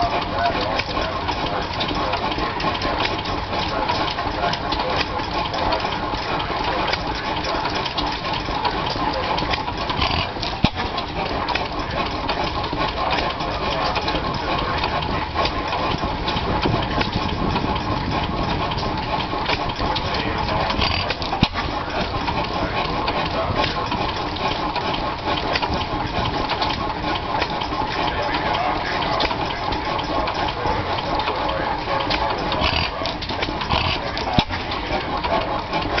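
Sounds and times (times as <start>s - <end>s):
stationary gas engine running: 0.0s - 36.0s.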